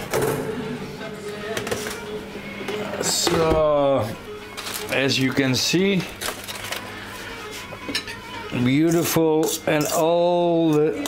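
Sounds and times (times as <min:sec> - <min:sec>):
electric oven humming: 0:00.0 - 0:11.0.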